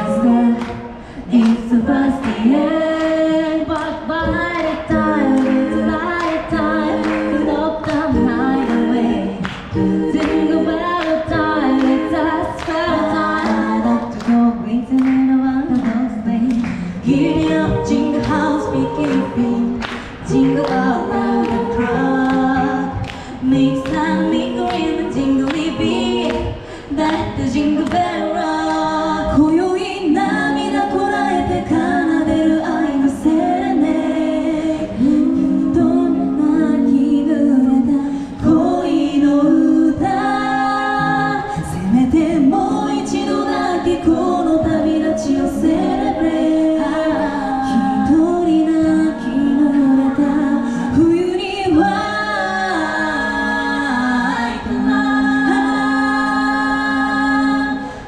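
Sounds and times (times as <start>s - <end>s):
women singing into microphones: 0.0s - 58.0s.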